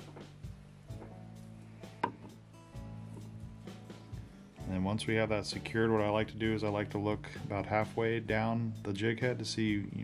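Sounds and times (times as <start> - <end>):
soft guitar music: 0.0 - 10.0.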